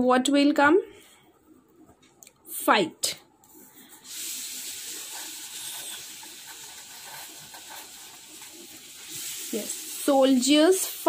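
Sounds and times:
steady hiss: 3.4 - 11.0
pen scratching on paper: 5.1 - 8.7.

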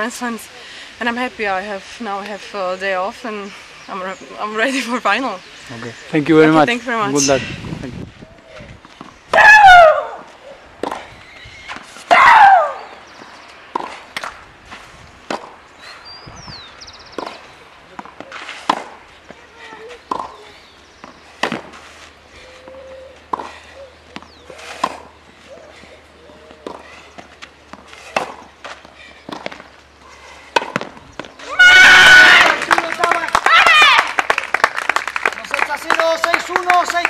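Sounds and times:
tennis ball struck by racket: 10.8 - 11.1, 13.7 - 14.4, 15.2 - 15.6, 17.2 - 19.0, 20.0 - 20.4, 21.0 - 21.8, 24.2 - 25.2, 26.5 - 29.7, 30.5 - 31.4
crowd shouting and cheering: 31.4 - 34.2.

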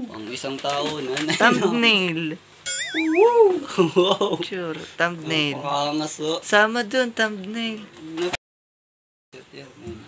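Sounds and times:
wavering pitched whine: 2.7 - 3.7.

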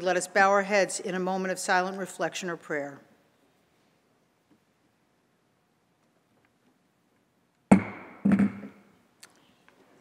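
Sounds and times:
gavel strikes: 7.7 - 8.8.

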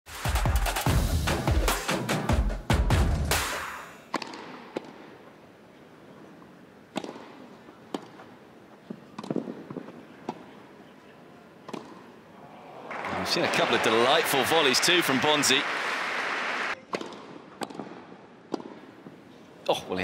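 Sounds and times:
intro music with steady beat: 0.1 - 3.9
tennis ball struck by rackets: 4.1 - 5.2, 6.9 - 8.2, 11.6 - 12.0, 16.9 - 18.9.

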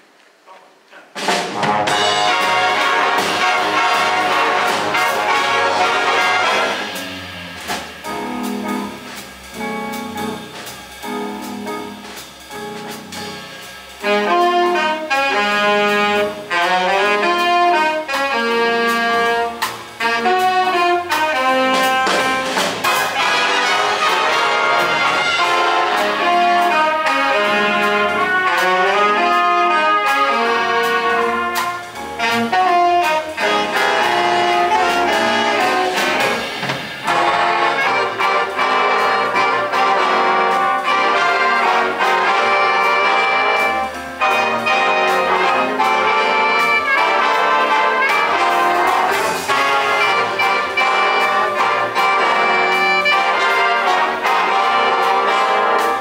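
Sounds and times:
jazz band playing: 1.0 - 56.0.

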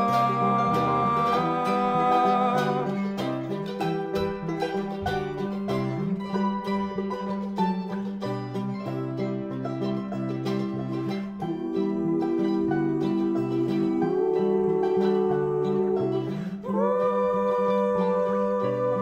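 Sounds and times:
banjo guitar and mandolin picking: 0.0 - 19.0.

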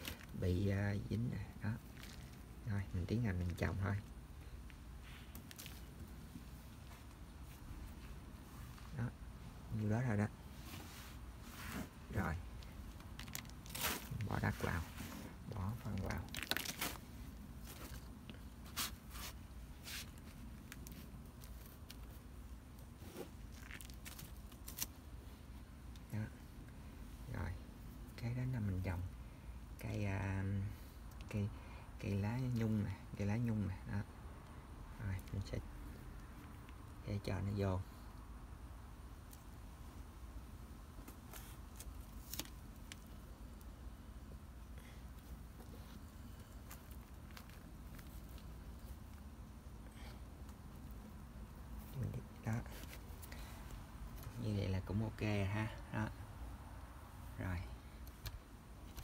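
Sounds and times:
hands rustling potting soil: 0.0 - 28.9, 39.1 - 56.2
soil rustling: 9.7 - 25.0
plastic liner crinkling: 12.5 - 25.0, 41.0 - 43.7.

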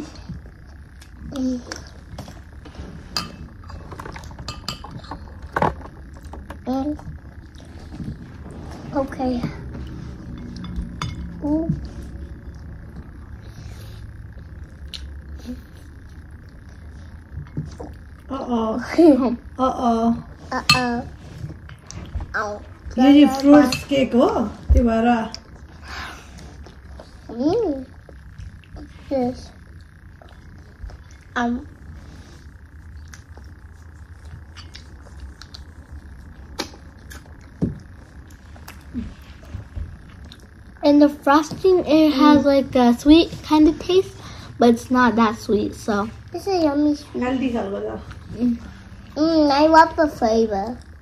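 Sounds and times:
low background hum: 0.0 - 51.0
quiet eating sounds: 0.0 - 51.0.

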